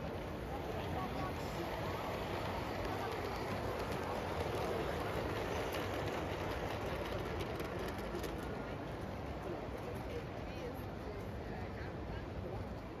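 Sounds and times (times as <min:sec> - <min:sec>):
light track clicks: 0:00.0 - 0:10.0
model train rolling rumble: 0:00.0 - 0:11.1.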